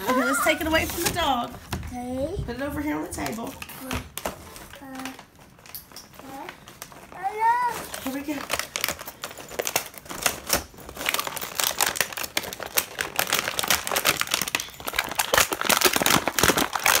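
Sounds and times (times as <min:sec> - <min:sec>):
plastic packaging crinkling: 0:03.0 - 0:17.0.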